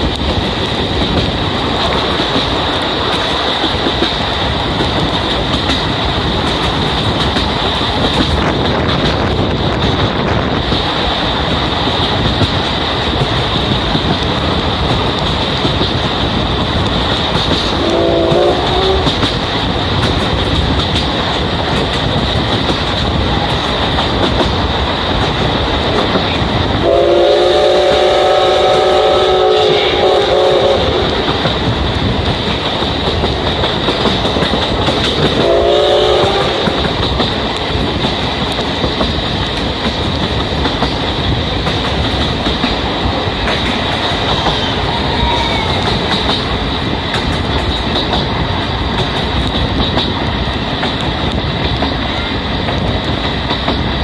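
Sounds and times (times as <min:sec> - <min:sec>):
train wheel clatter: 0:00.0 - 0:54.0
steam locomotive whistle: 0:17.8 - 0:19.2, 0:26.8 - 0:31.2, 0:35.4 - 0:36.9.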